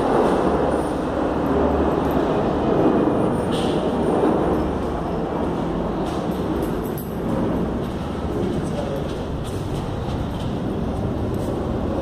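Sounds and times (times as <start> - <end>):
street noise: 0.0 - 12.0.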